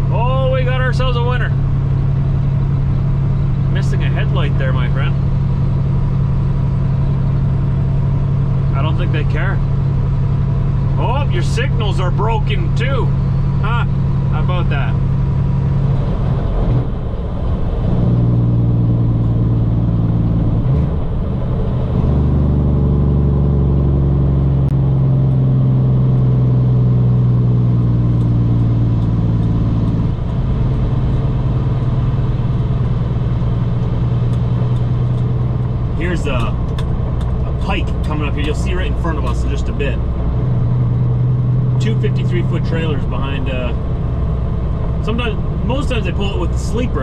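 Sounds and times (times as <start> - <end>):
diesel truck engine droning: 0.0 - 47.0
road noise: 0.0 - 47.0
person talking: 3.7 - 5.2, 11.0 - 15.0, 36.0 - 36.6, 37.4 - 40.0, 41.8 - 43.8, 45.0 - 47.0.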